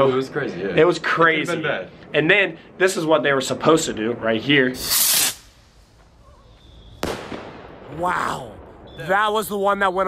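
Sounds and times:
firework bursting bang: 4.8s - 5.7s, 7.0s - 8.0s
firework launch hiss: 4.8s - 6.0s.

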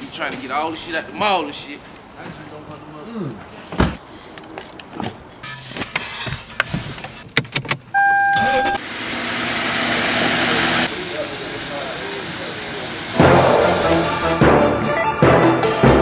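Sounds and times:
short electronic beep: 8.0s - 8.8s
loud music beat: 13.2s - 16.0s.

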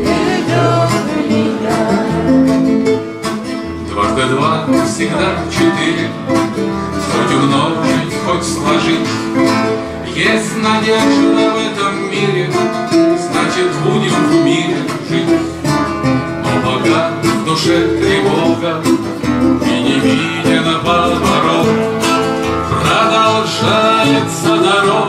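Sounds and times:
two acoustic guitars playing: 0.0s - 25.0s.

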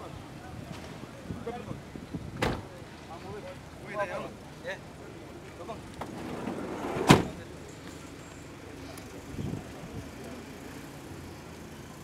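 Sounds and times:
sliding door slamming shut: 6.0s - 7.4s.

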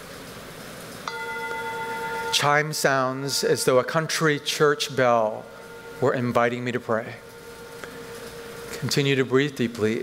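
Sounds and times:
bell chime ringing: 1.1s - 8.8s.

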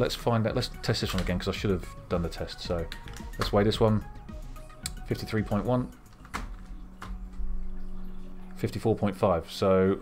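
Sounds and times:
low steady hum: 3.6s - 10.0s.

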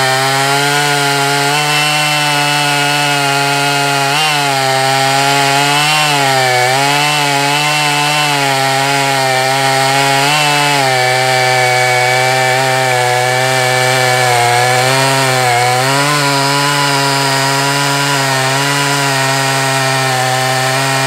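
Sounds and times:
chainsaw cutting log at full throttle: 0.0s - 21.0s.

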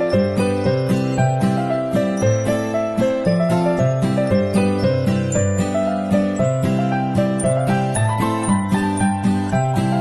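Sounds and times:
instrumental music with beat: 0.0s - 10.0s.

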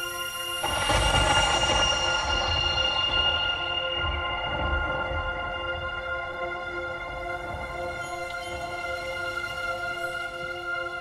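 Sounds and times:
high cymbal wash: 0.0s - 6.5s
low drum rumble: 0.6s - 6.6s.

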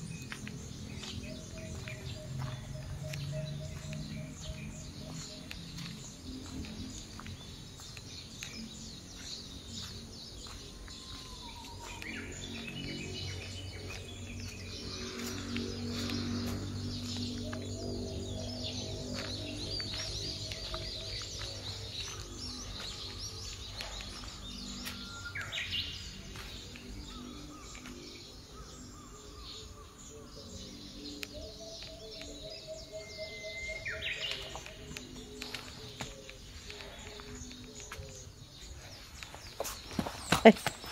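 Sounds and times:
birds chirping and calling: 0.0s - 40.9s.

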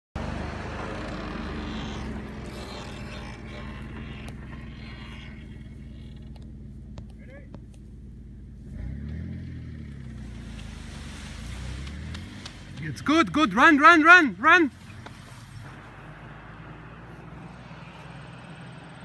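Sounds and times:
engine idling and revving: 0.2s - 19.0s.

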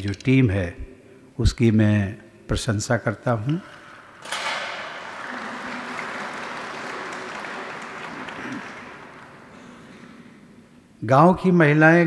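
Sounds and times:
audience applauding: 4.2s - 10.2s.

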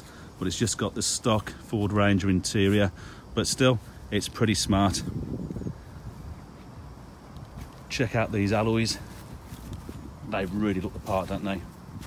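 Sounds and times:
wind rumble on microphone: 3.4s - 12.0s.

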